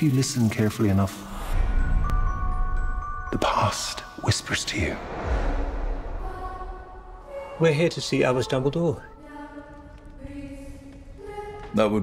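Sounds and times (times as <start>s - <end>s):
rushing whoosh: 4.9s - 7.4s.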